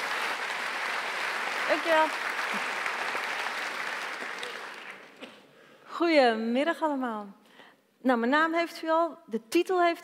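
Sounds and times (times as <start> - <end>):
audience applause: 0.0 - 5.2.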